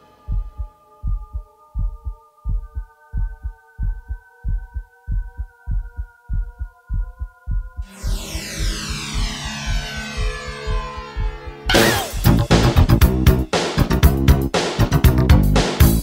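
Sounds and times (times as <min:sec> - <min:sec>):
heartbeat thumps: 0:00.3 - 0:11.6
sustained synth chord: 0:07.8 - 0:13.3.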